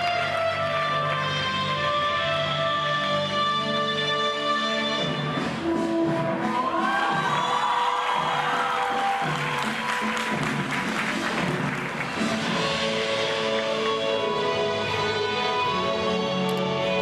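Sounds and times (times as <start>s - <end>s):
recorded music: 0.0s - 17.0s
audience cheering and clapping: 6.3s - 14.2s.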